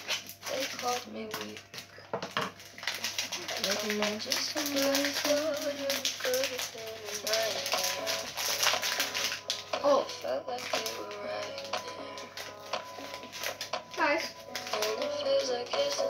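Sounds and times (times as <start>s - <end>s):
song with sung vocal: 9.1s - 13.2s, 14.6s - 16.0s.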